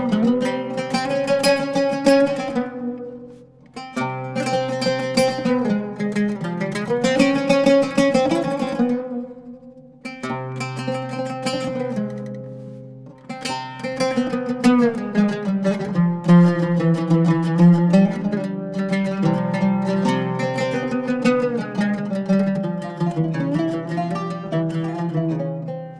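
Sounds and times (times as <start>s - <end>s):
two ouds playing: 0.0s - 25.9s.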